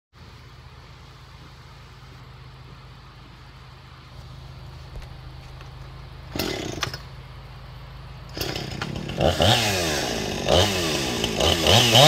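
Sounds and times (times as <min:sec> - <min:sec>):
chainsaw idling: 0:06.3 - 0:07.2, 0:08.2 - 0:12.0.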